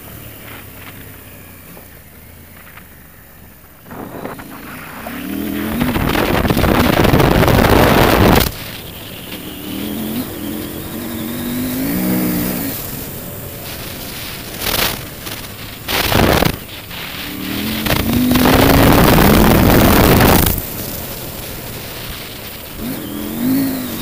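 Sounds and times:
motorcycle engine revving: 0.0 - 24.0
loud rushing noise: 3.8 - 24.0.

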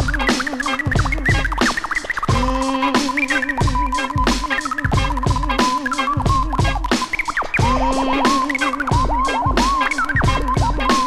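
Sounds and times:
hi-hats: 0.0 - 11.0
looping sampled tone: 0.0 - 11.0
record scratching: 0.0 - 11.0.

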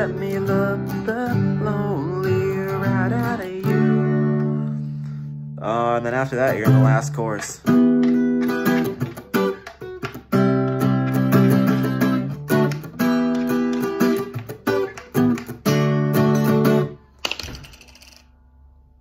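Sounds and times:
acoustic guitar strumming chords: 0.0 - 17.0.

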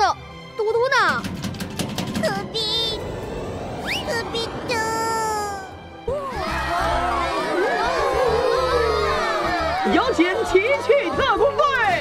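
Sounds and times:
music: 0.0 - 12.0
rising whistle: 3.3 - 5.0.

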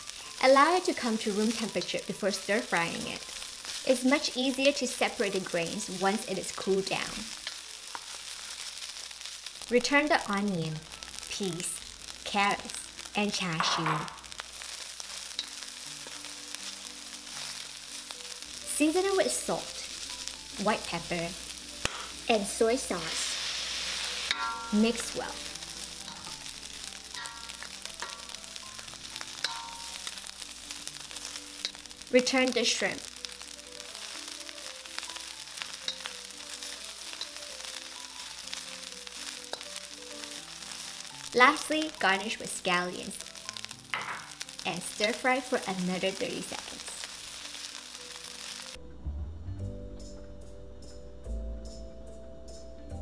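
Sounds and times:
food sizzling in a wok: 0.0 - 48.8
soft background music: 0.0 - 53.0.

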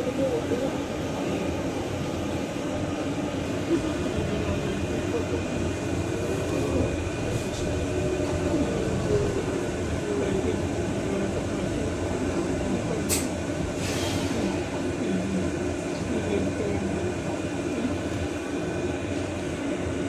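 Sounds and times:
bus road rumble: 0.0 - 20.0
passengers talking quietly: 0.0 - 20.0.

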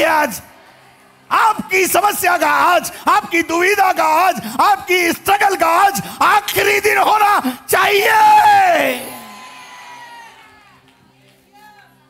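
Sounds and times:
person shouting preaching: 0.0 - 0.4, 1.3 - 9.2.

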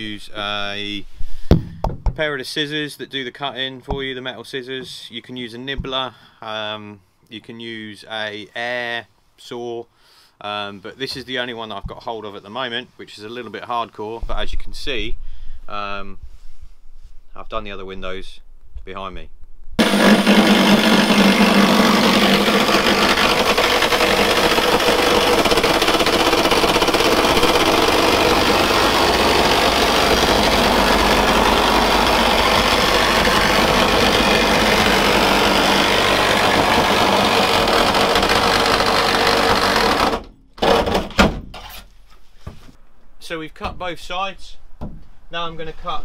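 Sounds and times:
reciprocating saw cutting metal: 19.8 - 40.9.

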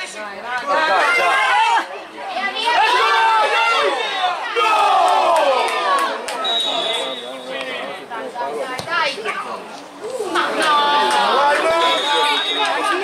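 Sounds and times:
players and spectators shouting: 0.0 - 13.0
high whistle: 6.4 - 7.6, 11.7 - 13.0.

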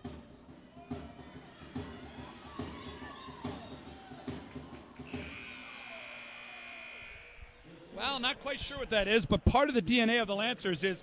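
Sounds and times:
crowd noise in gym: 0.0 - 11.0
scoreboard horn: 5.0 - 7.6.

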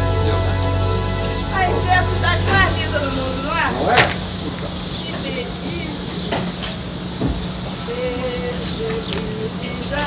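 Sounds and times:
low hum: 0.0 - 6.2
faint wavering voices: 0.0 - 10.0
steady hiss: 0.0 - 10.0.

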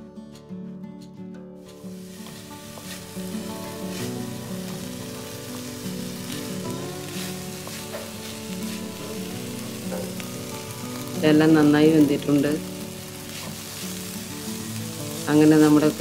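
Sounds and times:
soft background music: 0.0 - 16.0
stir-fry sizzling in a metal pan: 1.6 - 16.0
wooden spatula scraping a pan: 1.7 - 4.9, 6.2 - 9.1.

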